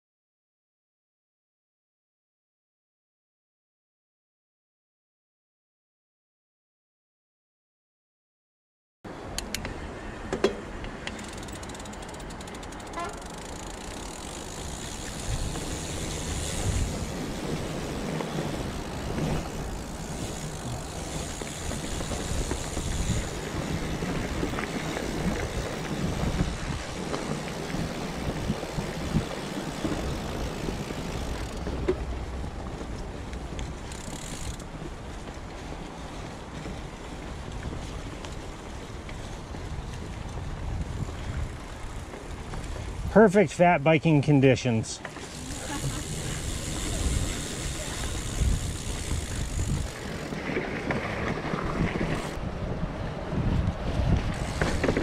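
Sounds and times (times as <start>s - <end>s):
bike rattle: 10.4s - 43.0s, 45.0s - 52.4s, 54.0s - 55.0s
bike tyres crunching through leaves: 11.2s - 43.1s, 45.0s - 52.6s, 54.0s - 55.0s
wind on microphone: 14.5s - 34.4s, 38.9s - 43.1s, 45.6s - 55.0s.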